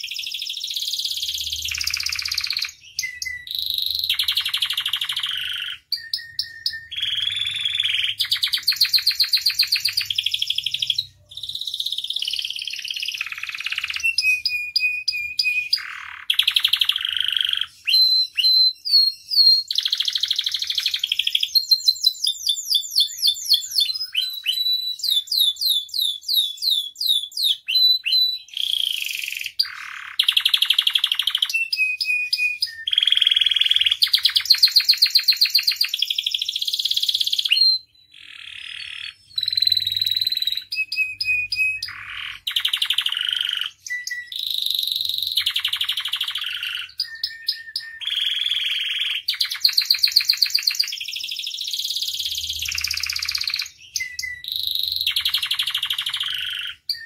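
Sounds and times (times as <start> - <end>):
canary singing: 0.0 - 57.0.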